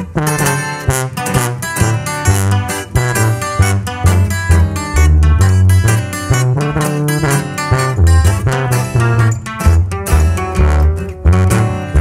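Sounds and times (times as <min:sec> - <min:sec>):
guitar picking a melody: 0:00.0 - 0:12.0
strummed guitar: 0:00.0 - 0:12.0
tuba bass line: 0:00.0 - 0:12.0.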